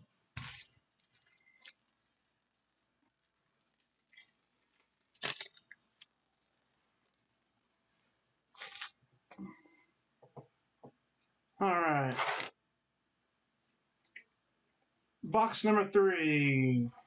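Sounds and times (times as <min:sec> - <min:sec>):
foil wrapper crinkling: 0:00.4 - 0:07.5, 0:08.5 - 0:09.0.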